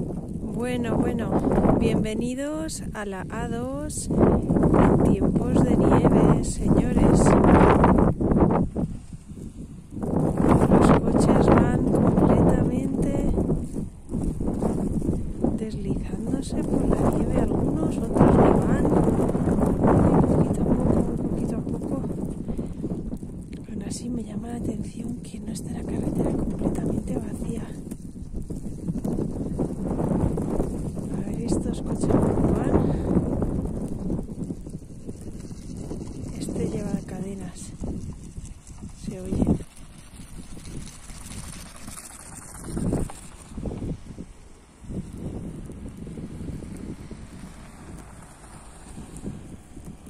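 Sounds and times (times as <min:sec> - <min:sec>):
wind buffeting microphone: 0:00.0 - 0:50.0.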